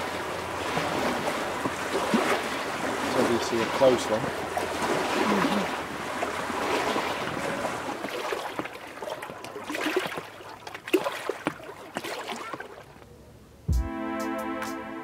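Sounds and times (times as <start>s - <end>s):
water lapping on pebble shore: 0.0s - 13.0s
small splashes and clicks: 8.0s - 13.1s
music with drum beat: 13.7s - 14.8s.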